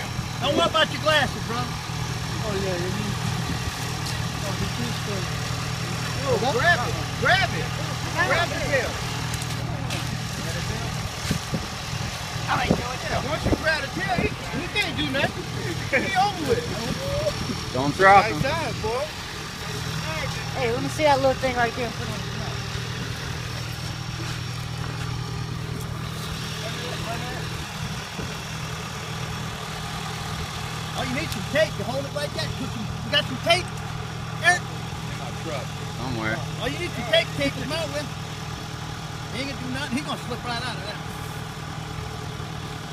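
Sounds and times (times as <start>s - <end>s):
vehicle engine idling: 0.0s - 42.9s.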